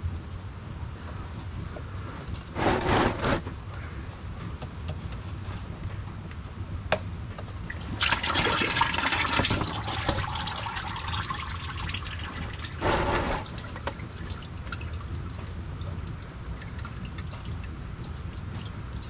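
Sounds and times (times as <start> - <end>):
fluid draining into pan: 7.7 - 15.4.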